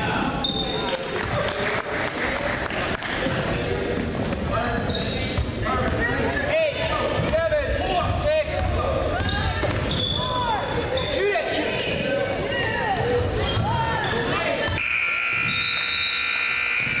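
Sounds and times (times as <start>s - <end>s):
sneakers squeaking on hardwood: 4.5s - 6.5s, 8.5s - 16.2s
scoreboard buzzer: 14.8s - 17.0s.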